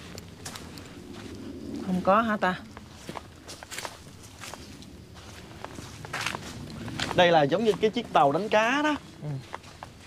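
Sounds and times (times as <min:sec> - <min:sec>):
faint footsteps: 0:00.0 - 0:10.0.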